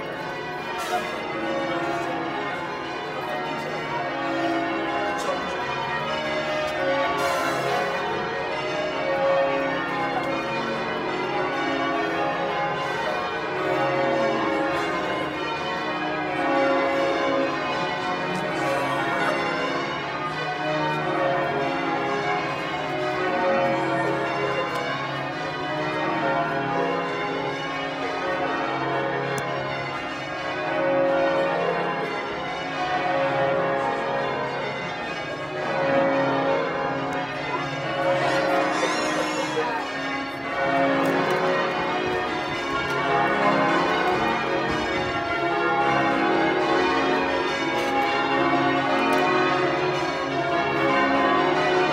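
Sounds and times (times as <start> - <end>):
church bells pealing: 0.0 - 51.9.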